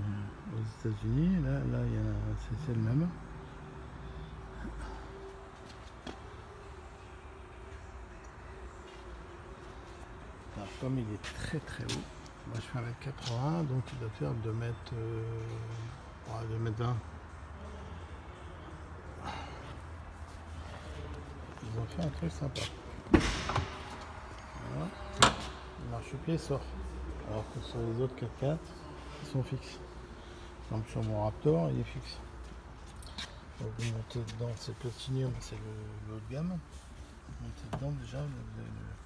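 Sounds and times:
car door opening clunk: 23.0s - 24.1s, 25.0s - 25.6s.

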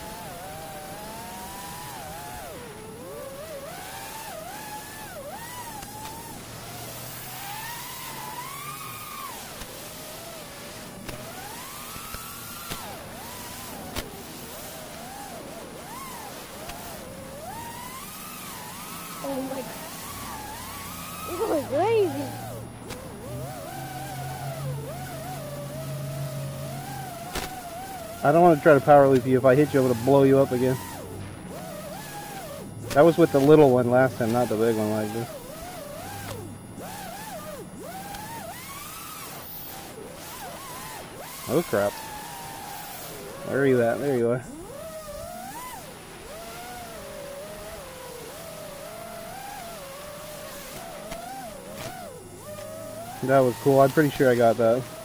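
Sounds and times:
model aircraft propellers whining: 0.0s - 55.0s
steady low hum: 0.0s - 55.0s
sharp click: 27.3s - 27.6s.

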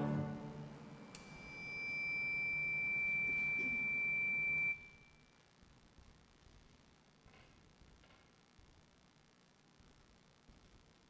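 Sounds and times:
high feedback whistle tone: 0.9s - 5.2s.

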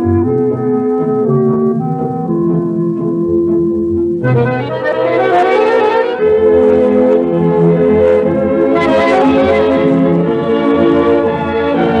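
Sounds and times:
dance orchestra playing a tango: 0.0s - 12.0s.

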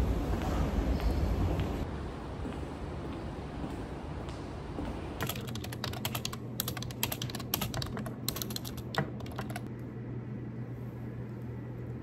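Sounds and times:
low steady hum: 0.0s - 12.0s
computer keyboard typing: 5.2s - 9.7s.

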